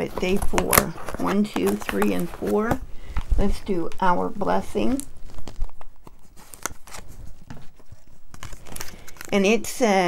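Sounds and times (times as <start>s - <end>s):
paper and card rustling: 0.0s - 10.0s.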